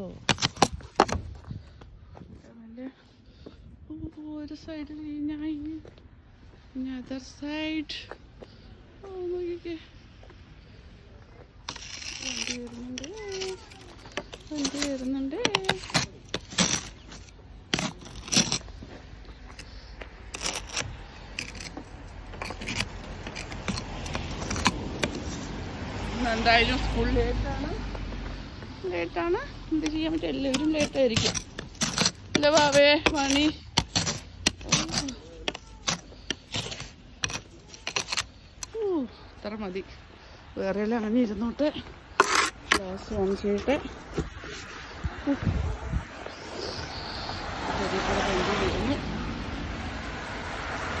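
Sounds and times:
brush scraping snow off glass: 0:11.6 - 0:18.9, 0:19.5 - 0:25.7, 0:29.8 - 0:38.7, 0:42.1 - 0:44.7.

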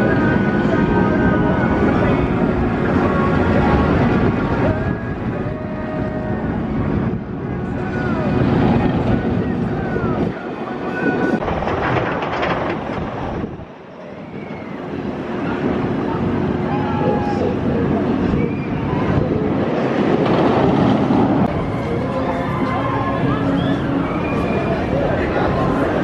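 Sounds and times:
roller coaster rumbling on track: 0:00.0 - 0:26.0
people screaming: 0:16.1 - 0:19.6, 0:21.8 - 0:25.8.

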